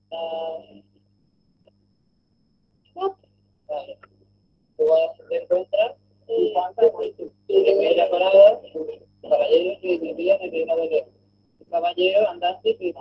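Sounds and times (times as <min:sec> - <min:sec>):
faint low hum: 0:00.0 - 0:13.0
indistinct speech: 0:00.1 - 0:00.8, 0:03.7 - 0:04.0, 0:04.8 - 0:11.1, 0:11.7 - 0:13.0.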